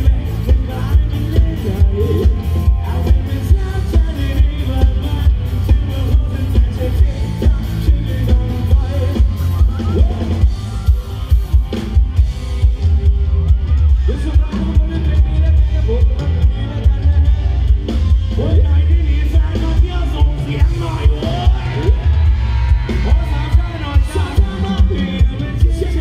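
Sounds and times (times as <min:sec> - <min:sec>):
person singing: 0:00.0 - 0:10.8, 0:18.4 - 0:26.0
drum kit beat: 0:00.0 - 0:26.0
electric guitars and bass: 0:00.0 - 0:26.0.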